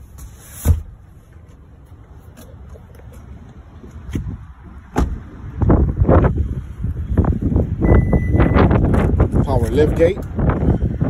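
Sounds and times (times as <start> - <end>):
wind buffeting microphone: 3.0 - 11.0.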